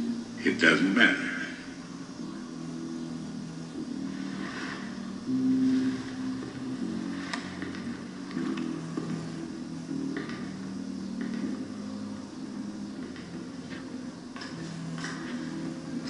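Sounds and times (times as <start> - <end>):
low sustained film score: 0.0 - 16.0.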